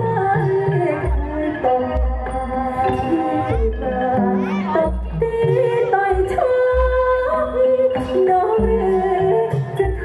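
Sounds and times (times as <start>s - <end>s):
woman singing through a microphone: 0.0s - 10.0s.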